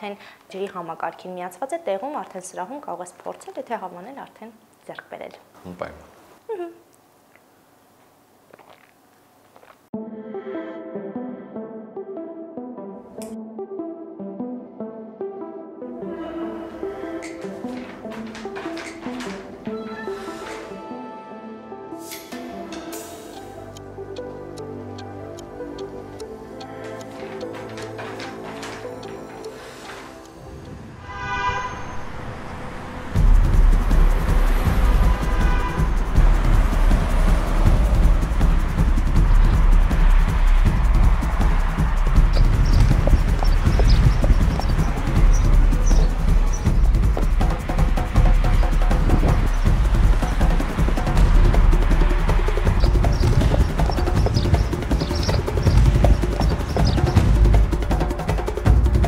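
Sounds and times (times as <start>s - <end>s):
music with heavy bass beat: 33.2s - 59.0s.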